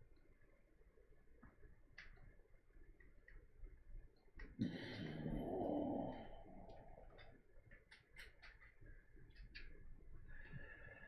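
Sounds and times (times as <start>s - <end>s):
faint light ticks: 0.0s - 11.0s
breathy exhale: 4.6s - 6.7s.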